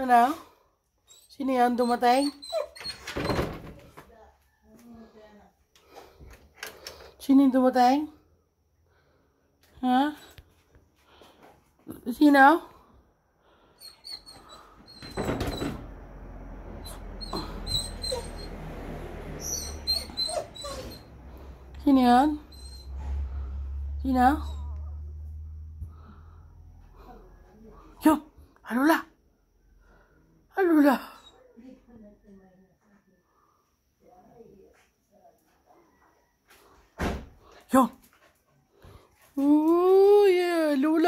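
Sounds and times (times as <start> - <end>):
dog whining: 1.1 - 3.2, 13.8 - 15.7, 16.8 - 18.6, 19.4 - 21.2, 22.3 - 23.2.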